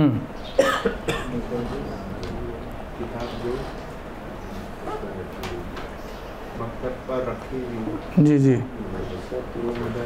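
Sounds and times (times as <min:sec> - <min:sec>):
short coughs: 0:00.6 - 0:01.4.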